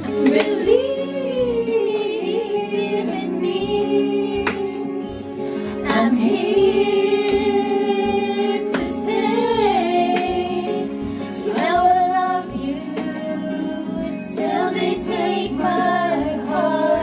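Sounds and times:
backing track music: 0.0s - 17.0s
woman singing a slow ballad: 0.1s - 17.0s.

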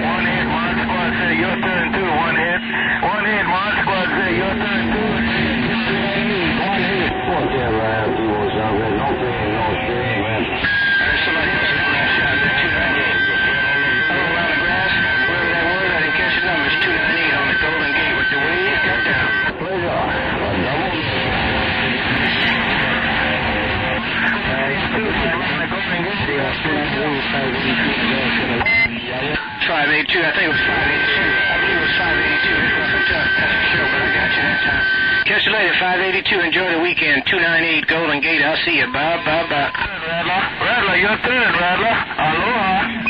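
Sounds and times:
garbled overlapping radio voices: 0.0s - 43.0s
radio static: 0.0s - 43.0s.

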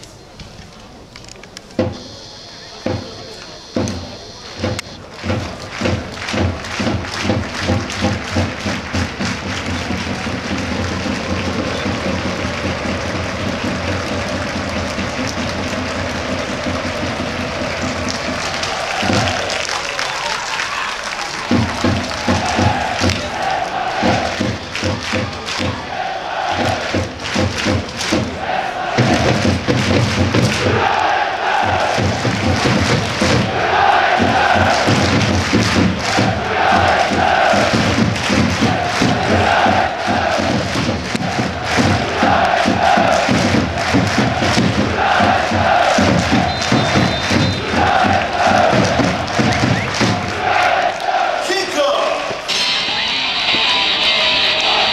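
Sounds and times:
steady beat of thuds: 1.8s - 19.6s, 21.4s - 51.4s
crowd chanting in unison: 2.0s - 54.9s.

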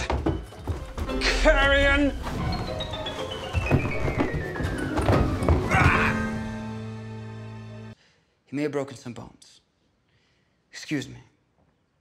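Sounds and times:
body falling down stairs: 0.0s - 6.7s
music with falling tone: 0.8s - 7.9s.

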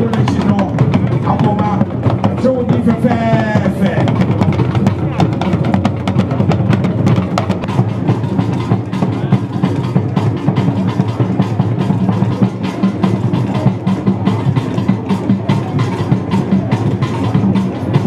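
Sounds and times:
loud music with busy drumming: 0.0s - 18.0s.

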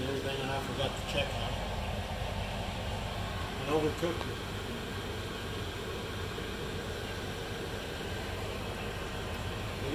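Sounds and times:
low background hum and hiss: 0.0s - 9.9s.

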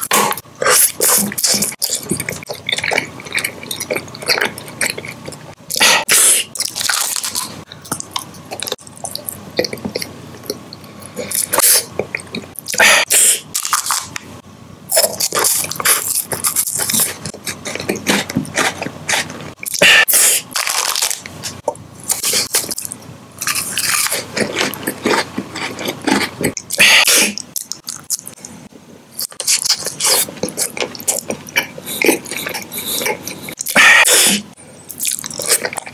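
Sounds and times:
mouth eating candy: 0.0s - 14.2s, 14.9s - 35.9s
crunching cookie bar: 6.6s - 10.0s, 13.5s - 14.2s, 14.9s - 19.9s, 20.5s - 26.8s
wrapper rustle: 20.6s - 21.6s.

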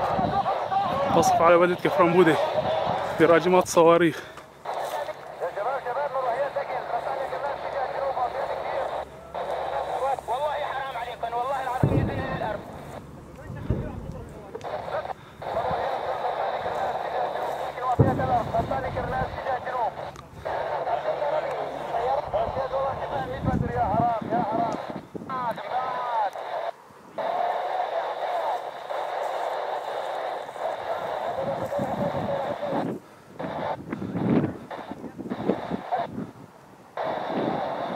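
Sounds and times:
people talking: 0.0s - 36.3s
distant rocket impact booms: 11.7s - 14.1s, 17.9s - 19.2s.

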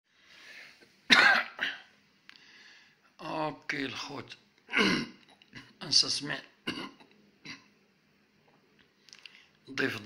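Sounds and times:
man coughing: 1.1s - 1.9s, 4.7s - 5.7s, 6.7s - 7.7s
short breath: 2.3s - 3.0s.

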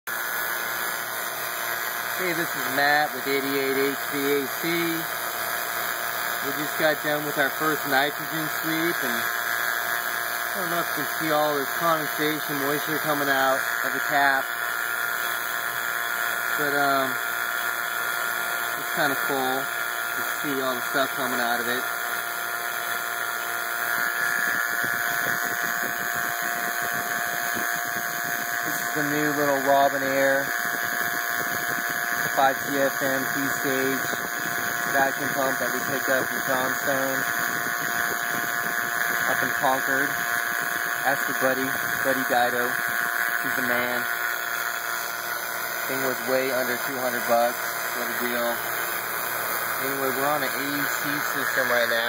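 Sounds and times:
vacuum pump hissing: 0.1s - 52.0s.

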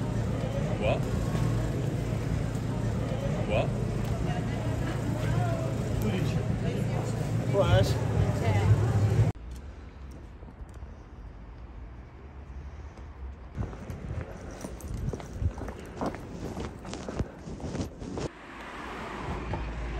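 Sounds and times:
passers-by talking: 0.0s - 9.4s
traffic rumble: 0.0s - 19.9s.

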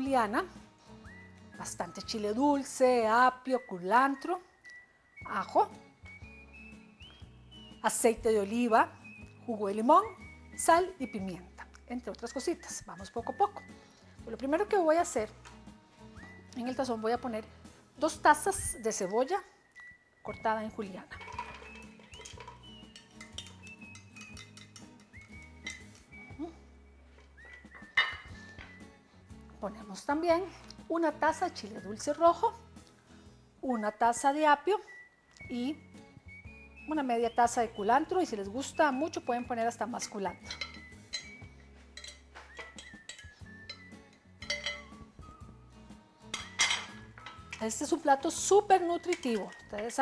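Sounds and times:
background music: 0.0s - 50.0s
light clinks of glass bowl: 21.1s - 26.0s, 40.4s - 45.0s, 46.3s - 47.7s.

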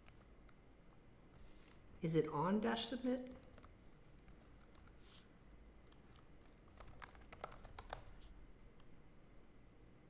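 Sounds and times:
typing on computer keyboard: 0.0s - 1.0s, 3.3s - 5.0s, 5.8s - 8.2s.

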